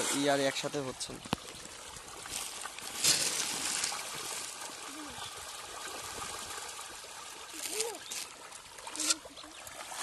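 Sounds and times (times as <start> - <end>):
fish splashing at water surface: 1.3 - 10.0.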